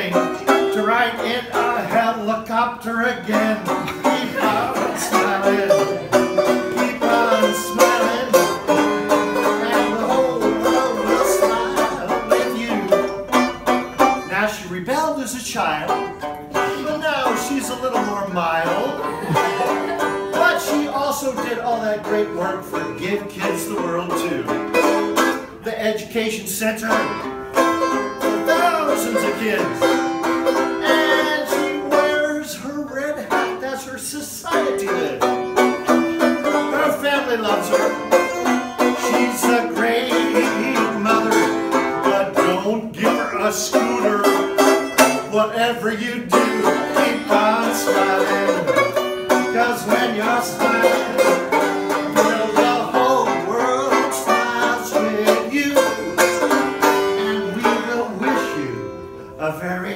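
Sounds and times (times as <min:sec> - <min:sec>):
banjo playing: 0:00.0 - 0:59.9.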